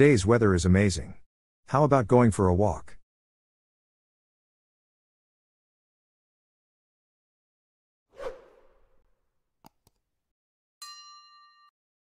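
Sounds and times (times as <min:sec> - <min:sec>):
whoosh: 0:08.2 - 0:09.0.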